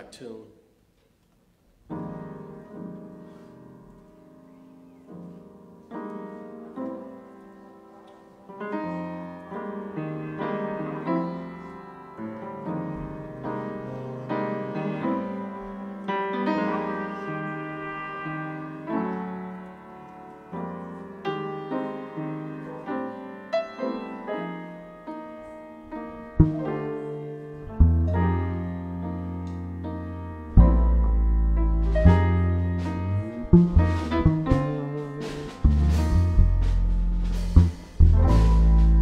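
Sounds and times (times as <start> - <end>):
jazz piano: 1.7 - 39.0
double bass: 25.9 - 39.0.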